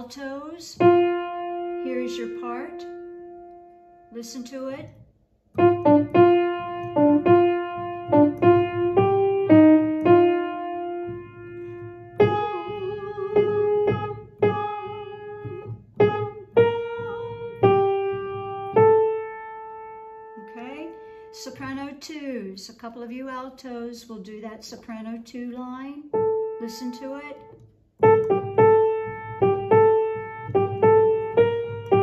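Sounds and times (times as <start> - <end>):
piano melody: 0.7 - 4.2, 5.5 - 21.4, 26.1 - 32.0.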